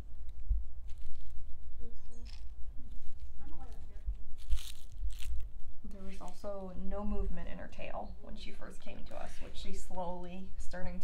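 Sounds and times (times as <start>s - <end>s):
crinkly toy rustling: 0.0s - 6.6s
low rumble: 0.0s - 8.7s.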